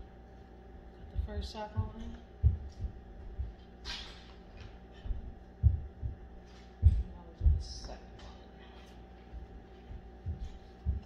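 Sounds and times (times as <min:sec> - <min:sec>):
faint steady hum: 0:00.0 - 0:11.0
dull low thumps: 0:01.1 - 0:03.6, 0:05.0 - 0:08.0, 0:09.4 - 0:11.0.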